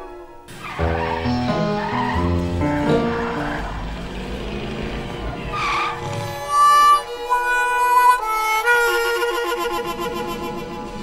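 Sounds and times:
road noise: 0:00.5 - 0:11.0
car engine rumbling: 0:00.6 - 0:07.4
tyre squeal: 0:05.5 - 0:06.8.

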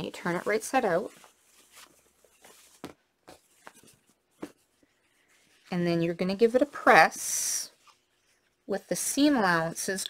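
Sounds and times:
fabric rustling and brushing: 0:00.0 - 0:09.6.

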